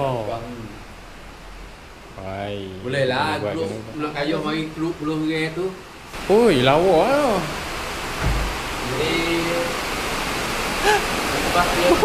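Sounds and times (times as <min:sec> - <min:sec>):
rain falling on wet street: 0:00.0 - 0:12.0
low thump: 0:08.2 - 0:08.7.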